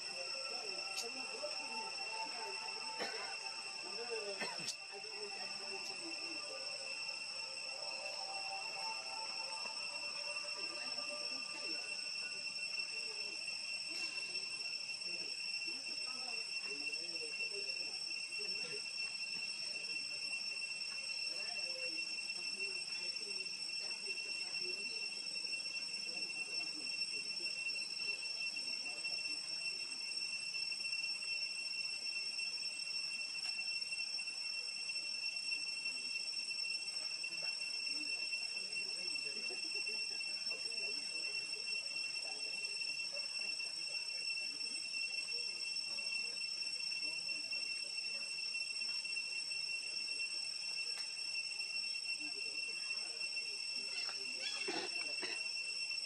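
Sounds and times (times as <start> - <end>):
high-pitched insect drone: 0.0 - 56.0.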